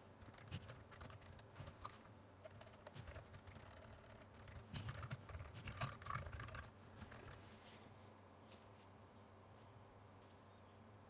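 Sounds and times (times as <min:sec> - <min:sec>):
typing on computer keyboard: 0:00.2 - 0:07.4.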